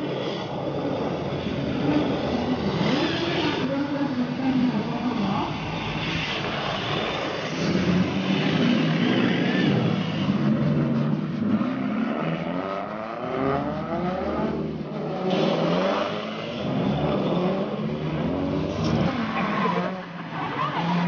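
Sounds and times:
tires scrubbing on asphalt: 0:00.0 - 0:21.0.

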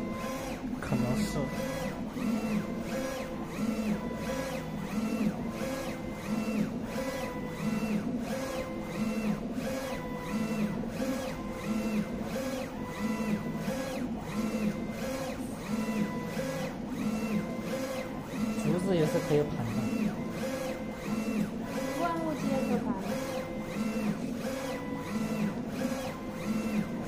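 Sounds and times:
printer carriage shuttling and whining: 0:00.0 - 0:27.0
steady machine hum: 0:00.0 - 0:27.0.

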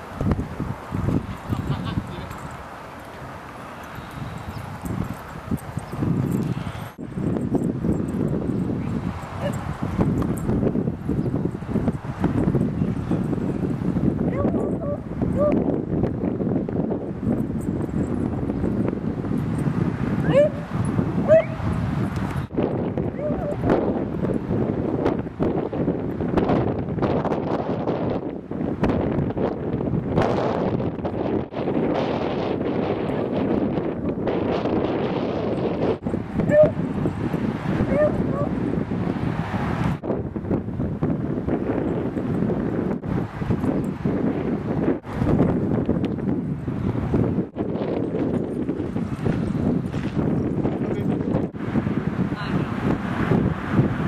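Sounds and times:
wind noise: 0:00.0 - 0:54.0
dog yipping: 0:09.4 - 0:09.7, 0:14.3 - 0:15.6, 0:20.2 - 0:20.6, 0:21.2 - 0:21.6, 0:23.1 - 0:23.7, 0:36.5 - 0:36.8, 0:37.9 - 0:38.5.

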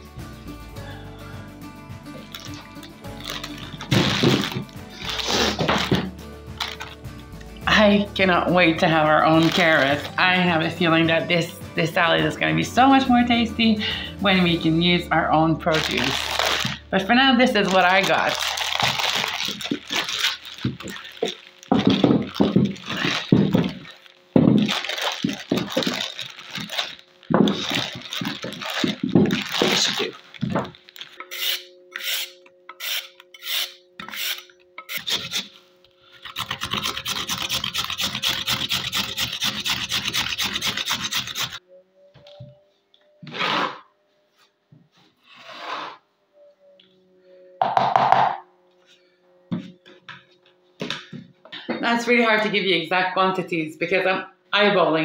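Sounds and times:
rustling and handling: 0:02.2 - 0:07.0, 0:09.2 - 0:10.4, 0:15.7 - 0:31.6
carrot grating on metal grater: 0:31.2 - 0:35.5, 0:36.2 - 0:41.6.

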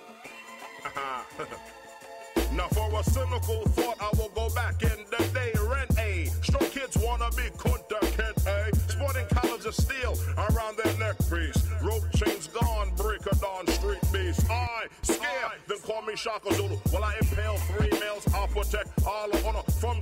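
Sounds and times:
deep bass line: 0:02.4 - 0:14.7, 0:16.5 - 0:20.0
rapping over a beat: 0:02.4 - 0:20.0.

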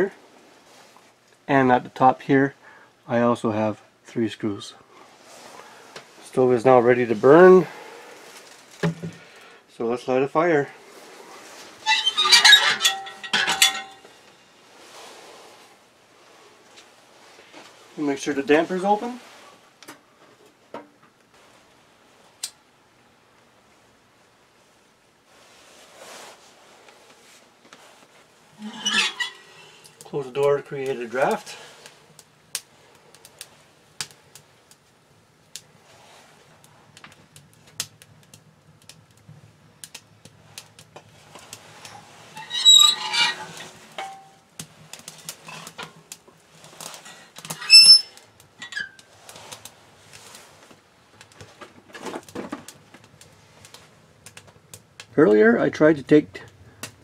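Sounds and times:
fire crackling in woodstove: 0:00.0 - 0:57.0
metal clanks of stove door: 0:11.9 - 0:14.1.

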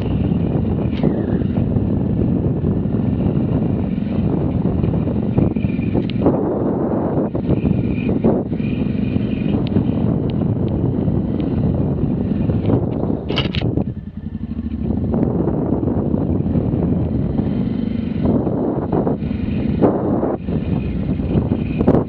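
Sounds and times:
motorcycle engine running: 0:00.0 - 0:22.0
wind noise: 0:00.0 - 0:22.0
rattles and clicks from bumps: 0:12.5 - 0:14.0.

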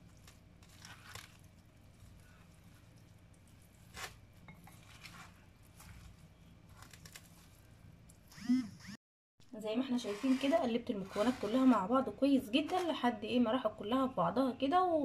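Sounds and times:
hands mixing food in a bowl: 0:00.0 - 0:08.3.

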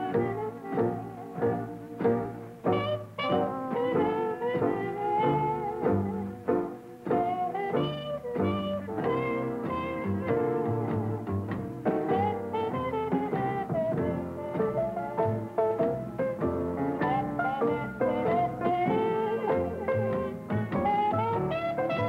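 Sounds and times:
muted jazz trumpet solo: 0:00.0 - 0:22.0
swing rhythm section: 0:00.0 - 0:22.0.

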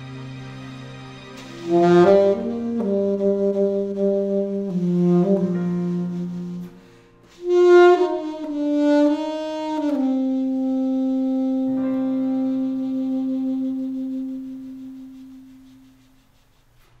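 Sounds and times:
accompaniment chord: 0:00.0 - 0:15.9
alto saxophone: 0:00.0 - 0:17.0.

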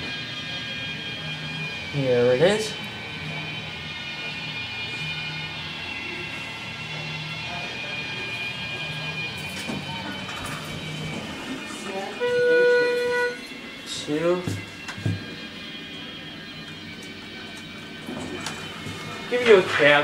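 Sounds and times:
background hum of store: 0:00.0 - 0:20.0
loud electronic elevator beep: 0:00.0 - 0:20.0.

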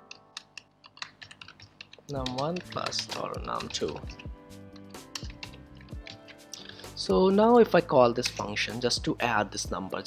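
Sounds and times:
keyboard key clicks: 0:00.0 - 0:06.7.

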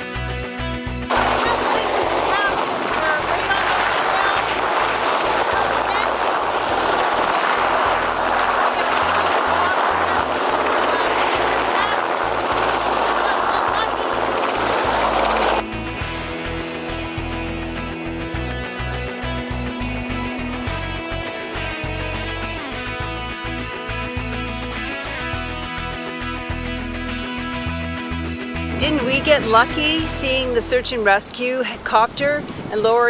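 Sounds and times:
background music: 0:00.0 - 0:31.3
woman's voice: 0:01.1 - 0:06.3, 0:08.7 - 0:15.4, 0:28.8 - 0:33.0
helicopter rotor and engine: 0:01.1 - 0:19.1.

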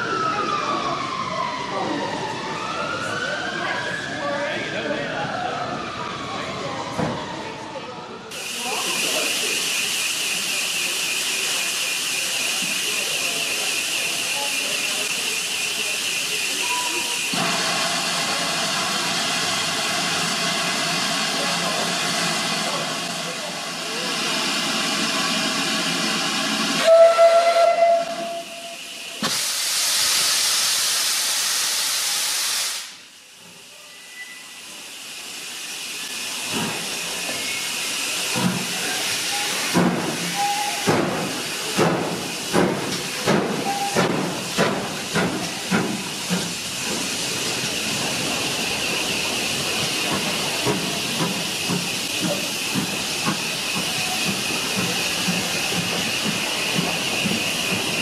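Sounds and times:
loud hiss of steam: 0:08.3 - 0:58.0
steam locomotive whistle: 0:26.8 - 0:29.4.

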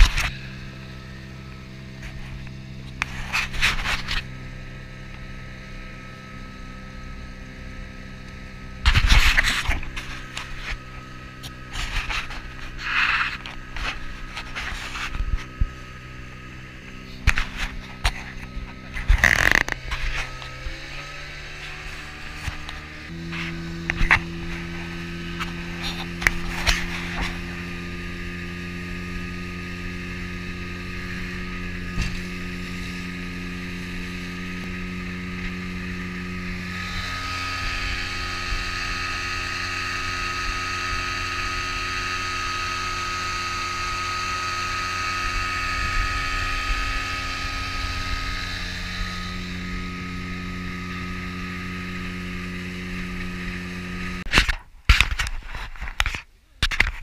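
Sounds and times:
high whine: 0:00.0 - 0:57.0
outboard motor running: 0:00.0 - 0:57.0.

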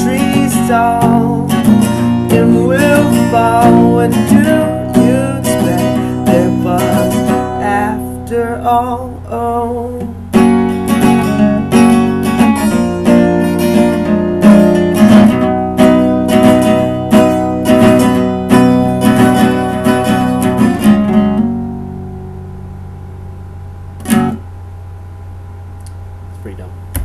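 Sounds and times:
acoustic guitar strumming: 0:00.0 - 0:24.6
steady low hum: 0:00.0 - 0:27.0.

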